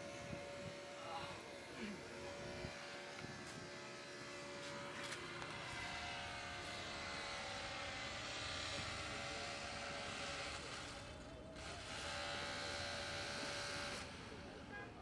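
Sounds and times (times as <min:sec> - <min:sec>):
engine drone: 0:00.0 - 0:15.0.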